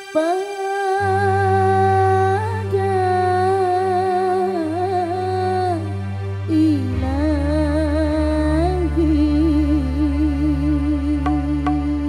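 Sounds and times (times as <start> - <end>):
keyboard chords: 7.0 - 12.0
low bass note: 10.8 - 12.0.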